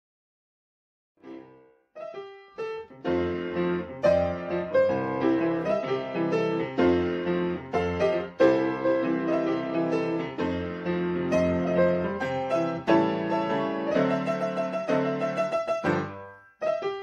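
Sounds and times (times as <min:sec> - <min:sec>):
piano music: 0:01.2 - 0:17.0.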